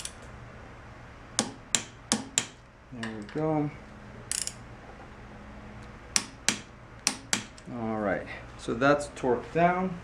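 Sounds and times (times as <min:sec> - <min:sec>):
torque wrench clicks: 0:04.3 - 0:04.6.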